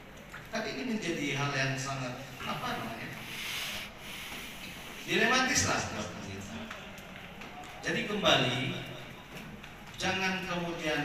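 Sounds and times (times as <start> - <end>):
soft hiss at microphone: 0.0 - 6.3
low room noise: 0.0 - 11.0.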